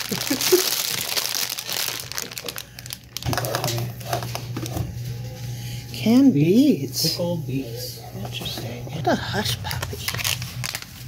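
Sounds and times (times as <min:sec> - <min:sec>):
plastic bags crinkling: 0:00.0 - 0:05.0, 0:08.6 - 0:11.0
steady low hum: 0:02.0 - 0:11.0.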